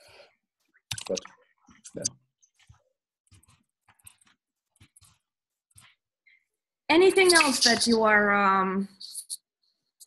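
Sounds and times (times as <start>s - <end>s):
person speaking: 6.9s - 8.5s.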